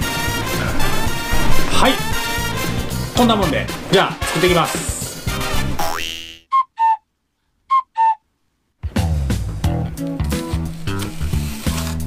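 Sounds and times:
background music: 0.0s - 7.0s, 8.8s - 12.0s
whistle-like notes: 6.5s - 7.1s, 7.7s - 8.3s.

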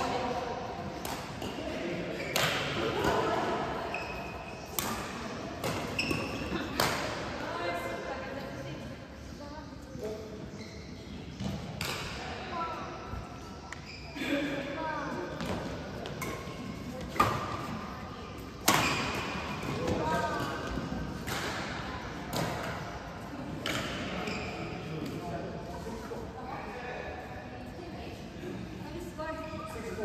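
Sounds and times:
racket hitting shuttlecock: 4.7s - 7.2s, 18.6s - 22.8s.

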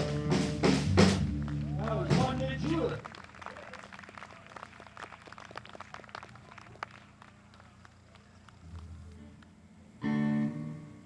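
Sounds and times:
light applause: 1.1s - 9.6s
faint steady hum: 1.3s - 11.0s.

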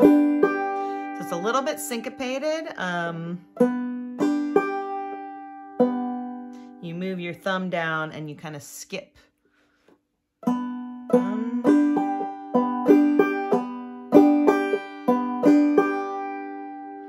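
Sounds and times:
banjo plucking and strumming: 0.0s - 8.0s, 10.4s - 17.0s.

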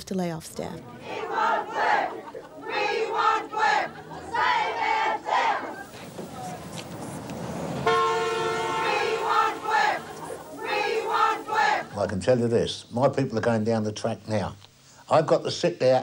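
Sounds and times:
crowd shouting and cheering: 0.8s - 12.0s
vehicle horn honk: 7.7s - 10.0s.

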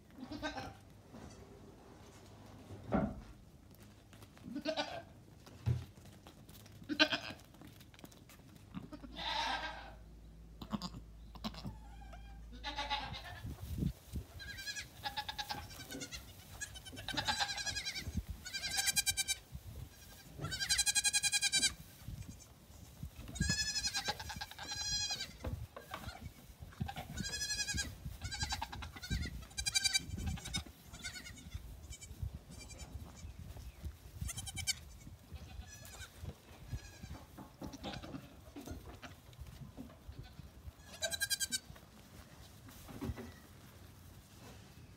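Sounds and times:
goat kids bleating: 0.1s - 0.8s, 4.4s - 5.2s, 6.9s - 7.5s, 8.7s - 13.5s, 14.4s - 22.6s, 23.2s - 33.6s, 34.2s - 39.2s, 40.0s - 41.8s.

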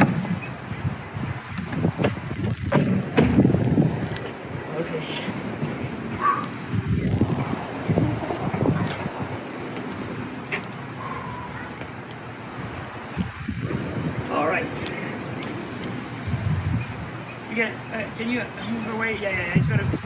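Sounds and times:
wind buffeting microphone: 0.0s - 17.4s, 18.7s - 20.0s.

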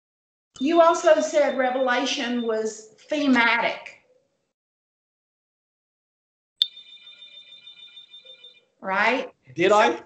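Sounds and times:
faint high ringing: 6.6s - 8.7s
person speaking: 9.5s - 10.0s.

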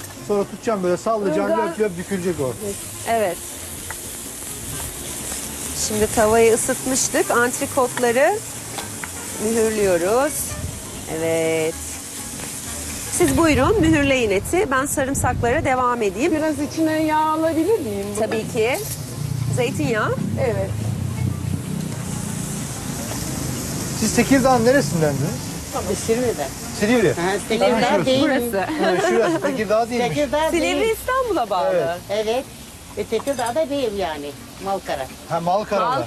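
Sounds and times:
meat sizzling in a frying pan: 0.0s - 36.0s.

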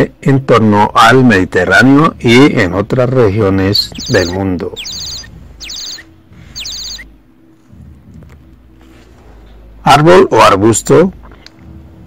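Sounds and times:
short high falling bird chirps: 3.8s - 7.1s.

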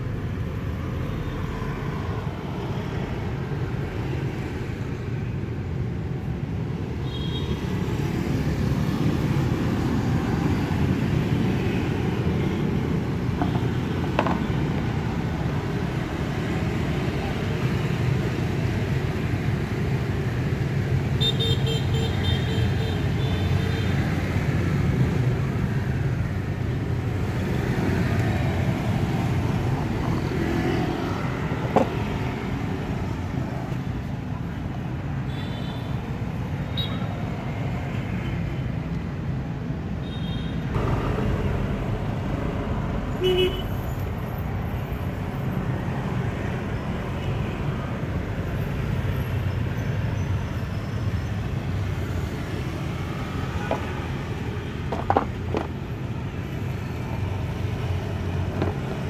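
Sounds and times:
street traffic rumble: 0.0s - 59.0s.

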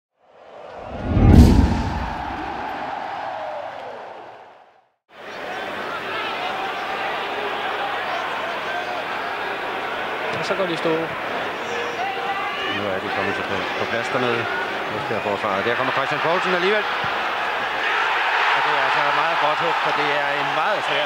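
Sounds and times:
stadium crowd noise: 0.2s - 21.0s
deep boom with whoosh: 0.8s - 3.1s.

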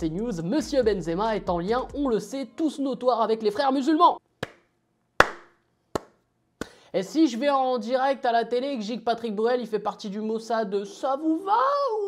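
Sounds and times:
slow handclapping: 5.2s - 6.7s.

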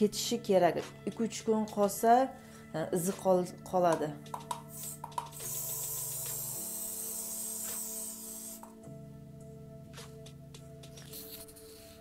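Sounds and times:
soft background music: 0.0s - 12.0s
aerosol spray hissing: 4.5s - 8.8s.

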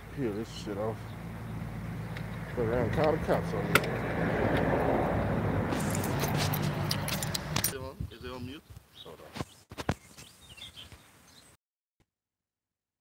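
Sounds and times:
keys jangling: 5.8s - 7.8s.

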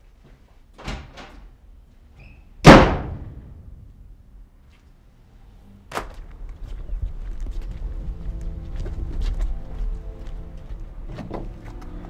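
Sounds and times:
door slamming shut: 0.8s - 1.5s, 2.6s - 3.9s.

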